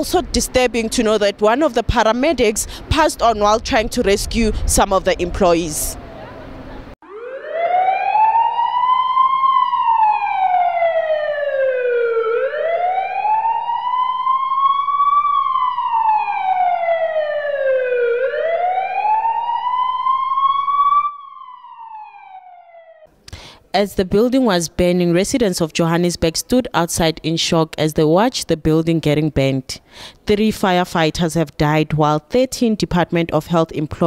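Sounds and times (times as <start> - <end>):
emergency siren wailing: 5.7 - 23.1.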